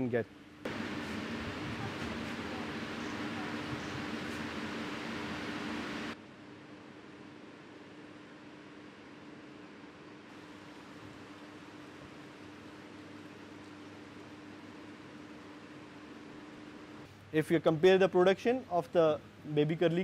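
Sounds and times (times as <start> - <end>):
low machinery hum: 0.0 - 20.0.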